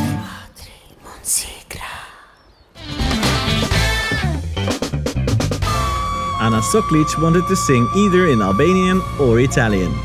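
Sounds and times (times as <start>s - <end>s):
music: 0.0s - 0.4s, 2.8s - 10.0s
person whispering: 0.2s - 2.4s.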